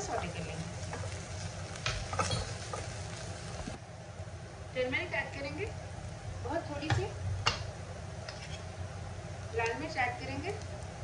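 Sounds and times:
onions sizzling in oil: 0:00.0 - 0:03.9, 0:04.7 - 0:11.0
steady low hum: 0:00.0 - 0:11.0
spatula scraping pan: 0:00.8 - 0:03.1.

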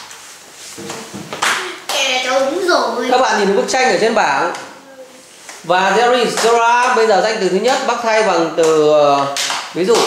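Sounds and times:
sharp smack: 0:01.4 - 0:01.7.

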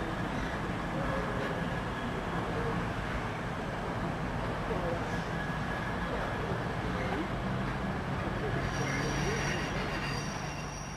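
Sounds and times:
train wheels squealing: 0:08.6 - 0:10.9.

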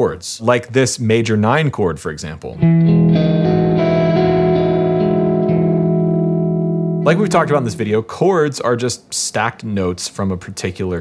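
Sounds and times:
electric guitar chord ringing: 0:02.6 - 0:07.9.

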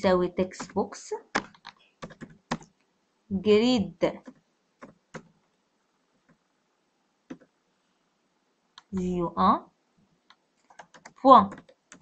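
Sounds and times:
keyboard keystrokes: 0:00.6 - 0:02.7, 0:10.7 - 0:12.0.

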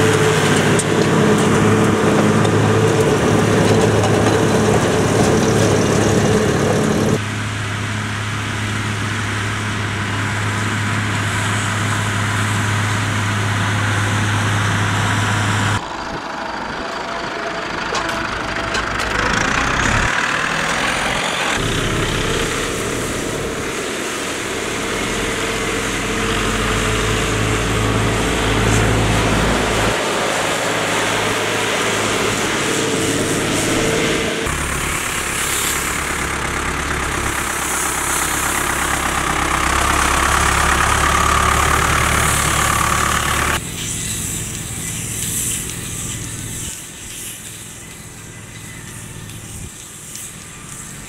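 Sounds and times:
diesel tractor engine running: 0:00.0 - 0:51.0
baling machinery hiss: 0:42.1 - 0:51.0.

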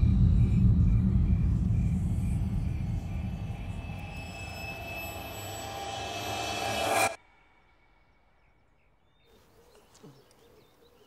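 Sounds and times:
deep low rumble film score: 0:00.0 - 0:08.9.

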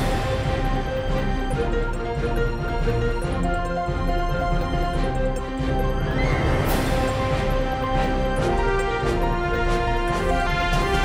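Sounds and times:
theme music with sustained tones: 0:00.0 - 0:11.0.

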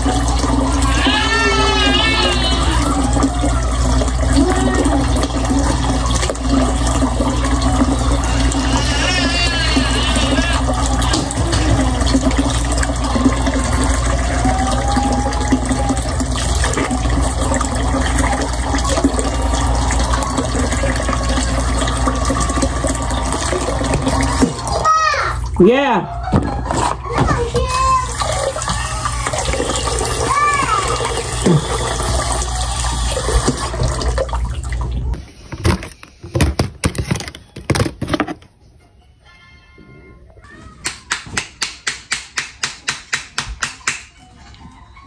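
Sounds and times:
faucet running into sink: 0:00.0 - 0:36.0.

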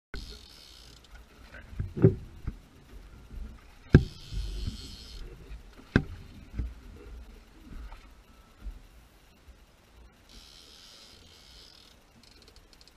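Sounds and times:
camera knocks and bumps: 0:03.9 - 0:04.8, 0:05.8 - 0:06.7.

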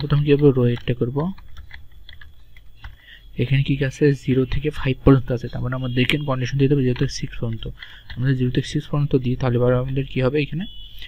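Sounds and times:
man speaking: 0:00.0 - 0:01.4, 0:03.3 - 0:10.7.

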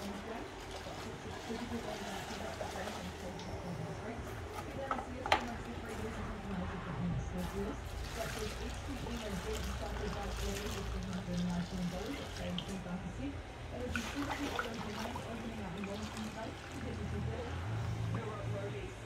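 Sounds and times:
resin trickling: 0:07.4 - 0:13.0, 0:13.6 - 0:17.6.

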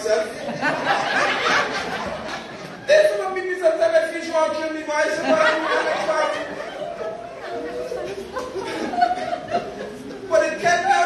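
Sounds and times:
man talking through a speaker system: 0:00.0 - 0:00.7, 0:02.8 - 0:06.8, 0:10.2 - 0:11.0.

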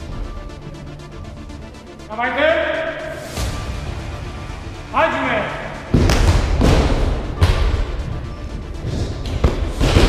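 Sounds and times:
kicks thudding on striking pad: 0:05.9 - 0:07.9.

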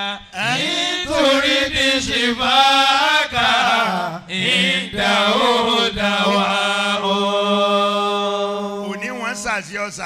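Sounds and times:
man chanting into microphone: 0:08.8 - 0:10.0.

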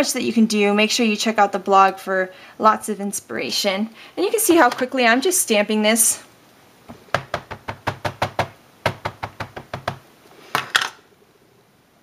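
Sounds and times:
ink pad tapping on stamp: 0:07.1 - 0:10.0.

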